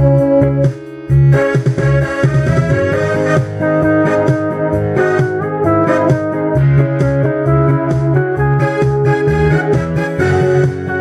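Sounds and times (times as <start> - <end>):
karaoke backing music: 0.0 - 11.0.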